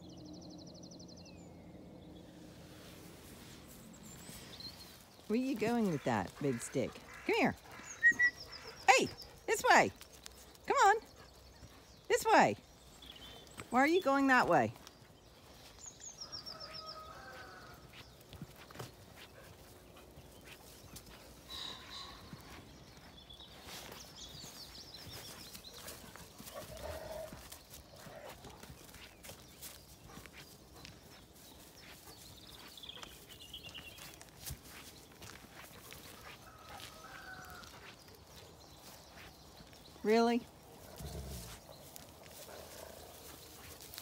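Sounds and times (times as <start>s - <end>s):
animal calls: 5.6s - 9.5s.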